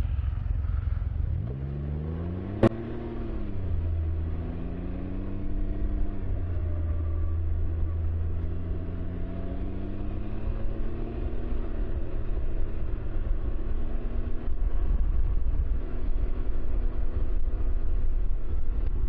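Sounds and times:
engine accelerating: 0:00.0 - 0:19.0
low road rumble: 0:00.0 - 0:19.0.

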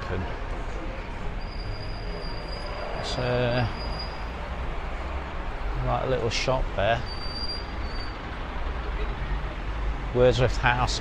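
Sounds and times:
street traffic rumble: 0:00.0 - 0:11.0.

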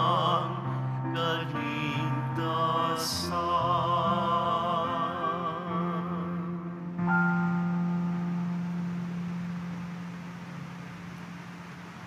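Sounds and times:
church organ closing chord: 0:01.2 - 0:12.0.

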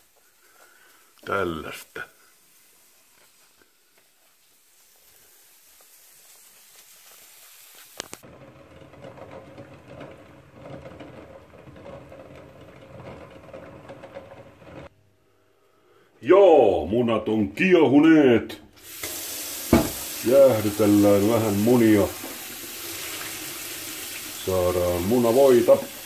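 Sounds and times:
faint hiss: 0:00.0 - 0:08.2, 0:18.6 - 0:26.0
water boiling hard: 0:00.0 - 0:14.9, 0:18.8 - 0:26.0.

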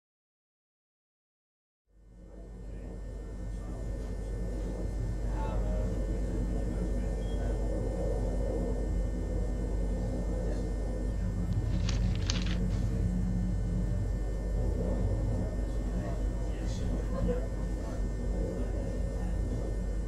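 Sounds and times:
low rumbling drone: 0:02.0 - 0:20.0.

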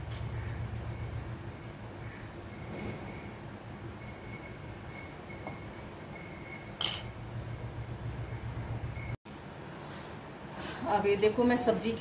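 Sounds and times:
sharp metal clink: 0:06.2 - 0:07.2.

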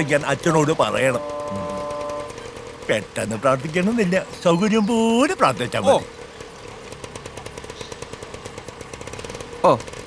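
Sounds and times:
small engine rattling: 0:00.0 - 0:10.0.

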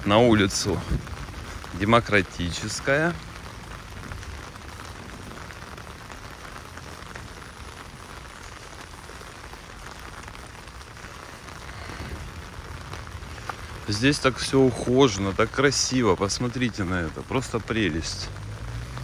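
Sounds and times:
rain on wet paving: 0:00.0 - 0:19.0.

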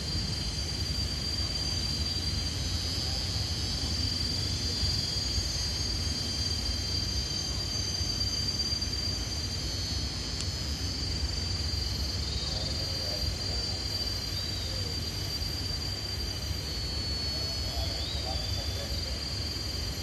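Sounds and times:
high-pitched insect drone: 0:00.0 - 0:20.0.

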